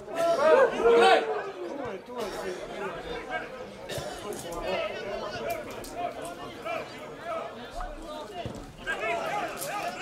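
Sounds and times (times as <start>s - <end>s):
distant crowd calling and chattering: 0.0s - 10.0s.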